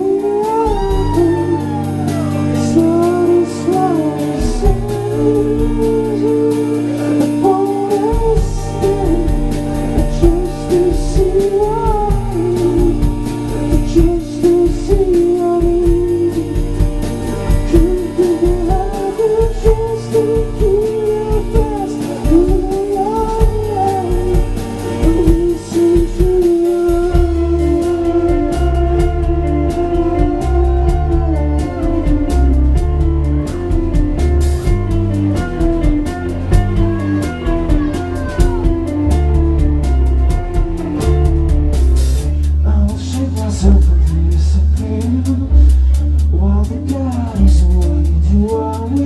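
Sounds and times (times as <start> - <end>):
rock band playing live: 0.0 - 49.0
wavering melodic guitar line: 0.0 - 49.0
drum hits: 8.2 - 42.3.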